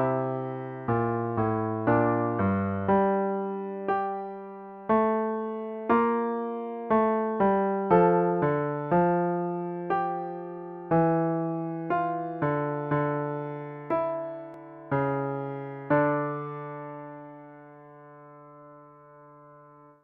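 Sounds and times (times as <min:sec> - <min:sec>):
piano-like keyboard counterpoint: 0:00.0 - 0:20.0.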